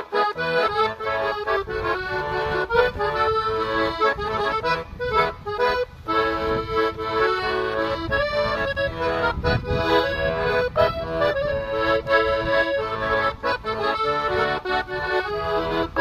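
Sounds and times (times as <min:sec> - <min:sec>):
piano accordion playing folk tune: 0:00.0 - 0:16.0.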